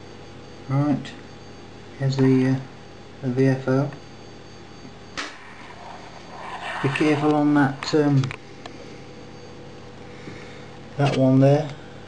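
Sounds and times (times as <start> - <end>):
man speaking: 6.4 - 8.3.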